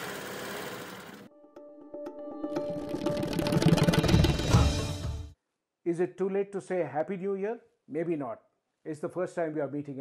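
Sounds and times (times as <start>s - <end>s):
intro music with held notes: 1.3s - 5.4s
rapid ticking percussion: 2.7s - 4.7s.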